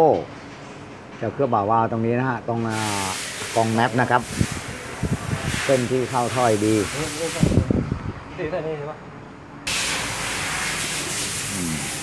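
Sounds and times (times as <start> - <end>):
hiss of rushing air: 2.7 - 7.7, 9.7 - 12.0.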